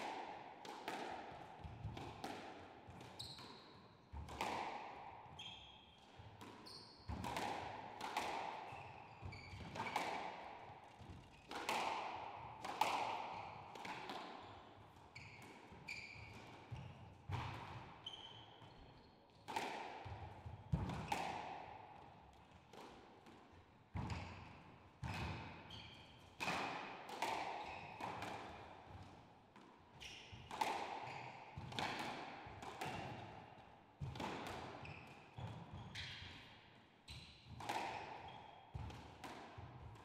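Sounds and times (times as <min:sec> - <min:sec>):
squash ball hits echoing: 0:00.0 - 0:03.5, 0:04.2 - 0:05.1, 0:06.0 - 0:14.4, 0:15.4 - 0:17.9, 0:19.5 - 0:21.8, 0:26.4 - 0:29.1, 0:30.4 - 0:33.4, 0:34.0 - 0:36.4, 0:37.5 - 0:40.0.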